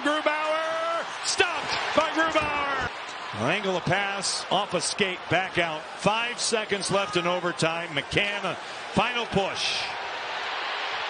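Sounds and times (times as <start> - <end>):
man commentating: 0.0 - 10.0
arena crowd hum: 0.0 - 11.0.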